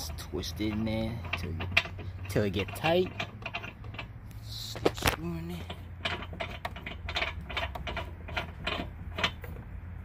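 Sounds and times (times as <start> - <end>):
threaded stud clicking and scraping: 0.0 - 10.0.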